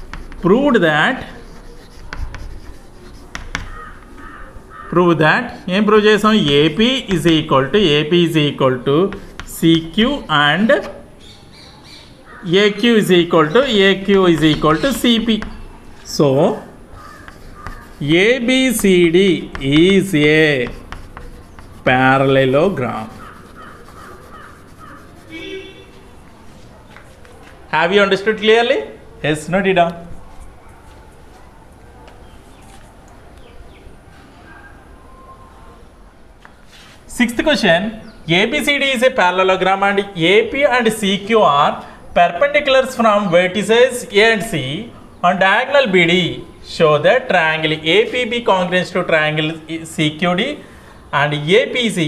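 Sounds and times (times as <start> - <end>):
chalk tapping on board: 0.0 - 0.6, 1.2 - 4.2, 6.2 - 7.8, 9.0 - 10.2, 14.1 - 15.6, 17.0 - 25.4
chalk scratching on chalkboard: 0.0 - 4.5, 5.4 - 7.9, 9.0 - 11.0, 13.4 - 15.7, 17.0 - 25.8
crow cawing: 3.6 - 5.0, 16.9 - 18.0, 23.2 - 25.1.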